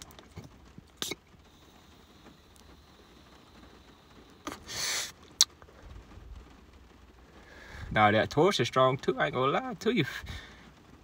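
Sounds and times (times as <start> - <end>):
rush of breath: 7.3 - 8.0, 10.2 - 10.8.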